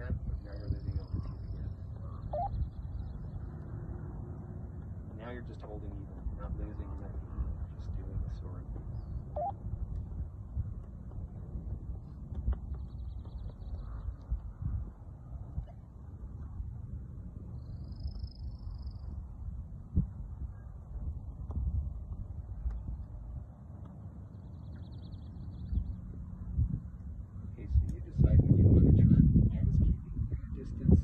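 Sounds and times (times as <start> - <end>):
wind buffeting microphone: 0.0 - 31.0
faint high trills: 2.3 - 2.6.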